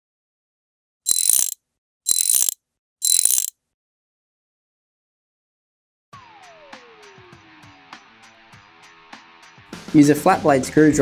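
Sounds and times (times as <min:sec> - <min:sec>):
mechanical ratcheting: 0:01.1 - 0:03.5.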